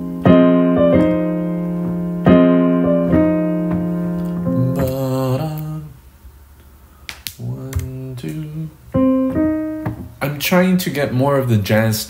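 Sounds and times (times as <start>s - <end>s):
digital keyboard notes: 0.0s - 5.1s.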